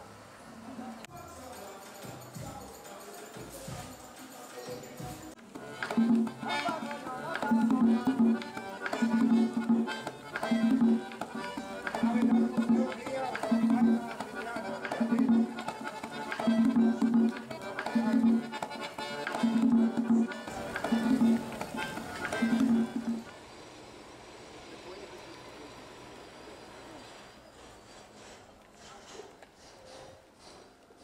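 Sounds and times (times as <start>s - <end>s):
accordion: 1.4s - 23.4s
hand drum: 5.4s - 23.3s.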